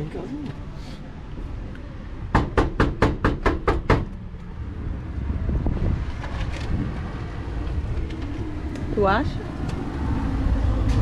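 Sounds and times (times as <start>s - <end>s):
street traffic noise: 0.0s - 11.0s
knocking on sheet-metal gate: 2.3s - 4.1s.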